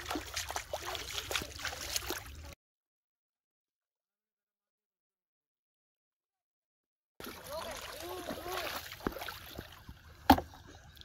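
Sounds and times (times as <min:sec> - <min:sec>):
water sloshing: 0:00.0 - 0:02.6, 0:07.2 - 0:11.0.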